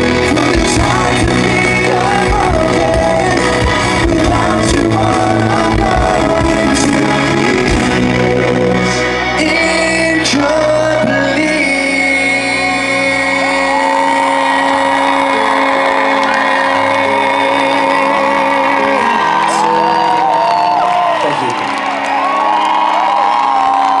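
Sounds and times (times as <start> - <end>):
crowd cheering and screaming: 0.0 - 24.0.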